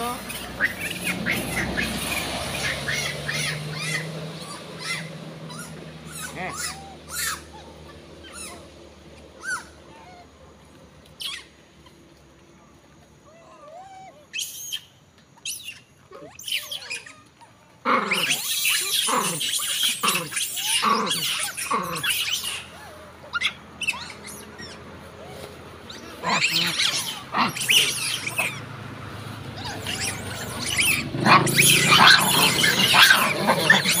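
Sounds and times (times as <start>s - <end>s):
macaques screaming: 0.0s - 10.3s, 11.2s - 11.5s, 13.4s - 34.0s.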